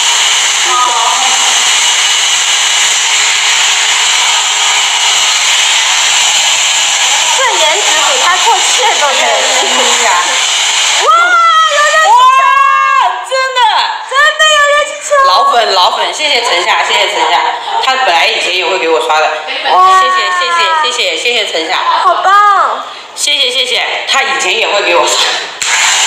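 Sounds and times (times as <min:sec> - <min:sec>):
hair dryer blowing: 0:00.0 - 0:12.1, 0:25.6 - 0:26.0.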